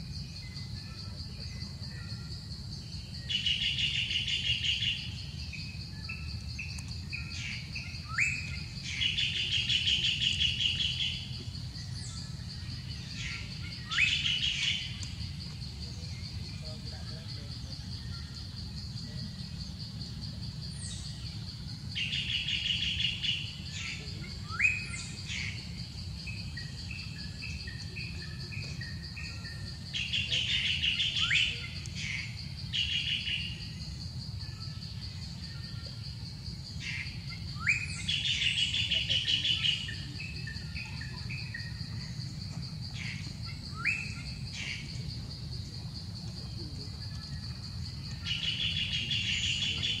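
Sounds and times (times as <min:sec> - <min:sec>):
high insect drone: 0:00.0 - 0:50.0
songbird trills and whistles: 0:00.2 - 0:16.7, 0:20.7 - 0:36.1, 0:36.7 - 0:45.1, 0:47.0 - 0:50.0.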